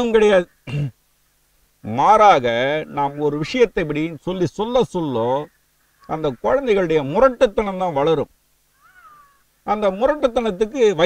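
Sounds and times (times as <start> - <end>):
man speaking: 0.0 - 0.9, 1.8 - 5.5, 6.1 - 8.3, 9.7 - 11.0
faint animal call: 8.7 - 9.8.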